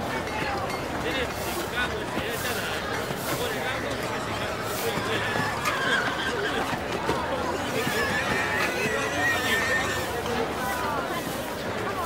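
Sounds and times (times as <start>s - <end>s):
street crowd chatter: 0.0s - 12.0s
horse whinnying: 4.4s - 10.2s.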